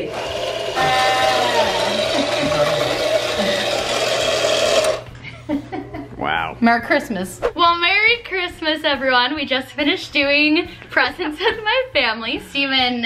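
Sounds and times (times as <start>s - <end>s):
toy motor whirring: 0.0s - 5.1s.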